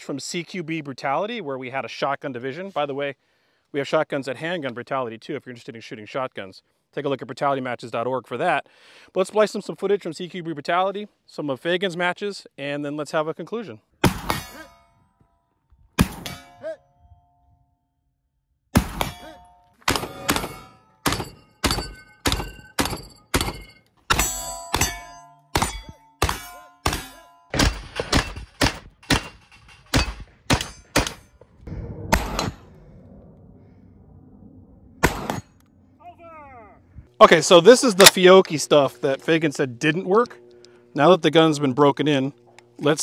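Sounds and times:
steel targets ringing: 19.0s - 28.5s, 29.1s - 31.4s
shotgun shots: 19.8s - 24.9s, 25.6s - 31.2s, 35.0s - 35.5s.

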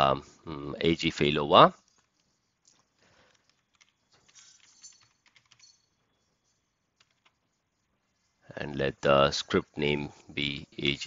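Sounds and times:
faint keyboard typing: 1.8s - 8.4s.

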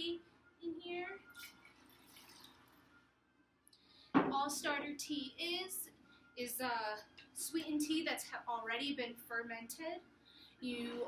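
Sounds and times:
liquid trickling into glass jar: 1.2s - 3.0s.

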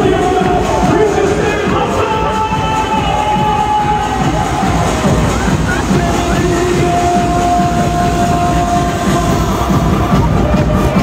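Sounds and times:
loud live dance music: 0.0s - 11.0s.

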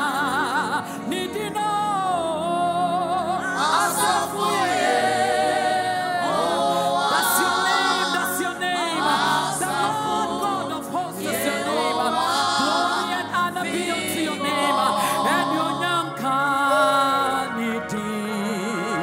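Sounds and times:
woman singing into a microphone: 0.0s - 3.5s, 14.6s - 19.0s.

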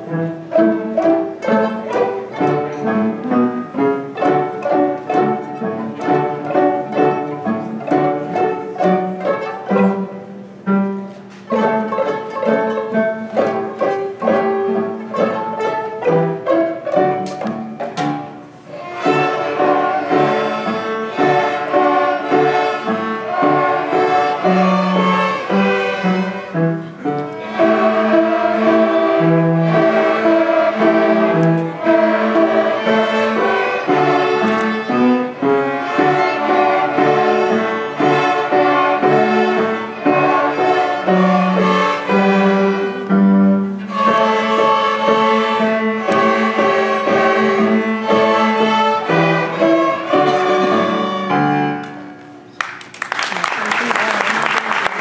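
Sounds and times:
string ensemble playing: 0.0s - 52.5s.

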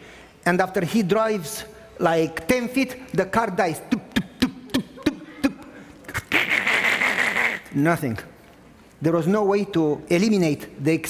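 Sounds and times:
man's hissing sputtering mouth noise: 6.0s - 7.7s.

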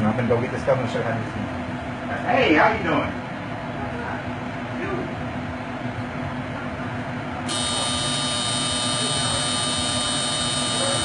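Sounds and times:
machine whining: 7.5s - 11.0s.

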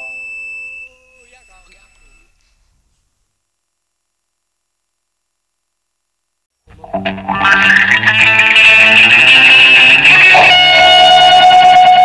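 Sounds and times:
held keyboard chord: 7.6s - 12.0s.

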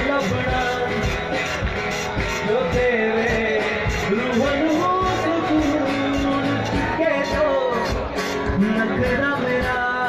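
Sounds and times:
guitar: 0.0s - 10.0s
man singing: 0.0s - 10.0s
steady drum beat: 0.0s - 10.0s.

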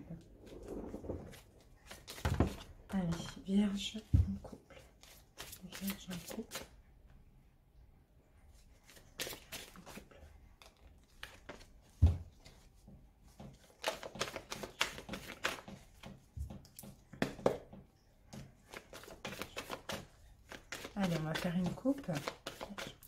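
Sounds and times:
cards being shuffled: 0.4s - 6.7s, 8.8s - 11.8s, 13.6s - 16.1s, 18.6s - 23.0s.

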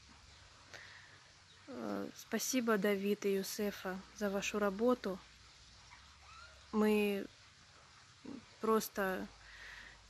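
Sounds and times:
background hiss: 0.0s - 10.0s
woman speaking: 1.7s - 5.2s, 6.7s - 7.3s, 8.2s - 9.4s.

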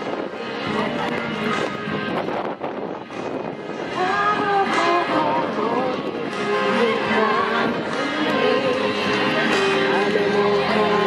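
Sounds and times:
woman singing: 3.9s - 11.0s.

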